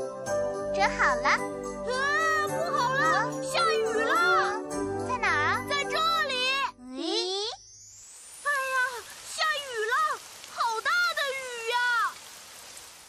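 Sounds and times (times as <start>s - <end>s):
children's music with bell-like notes: 0.0s - 6.8s.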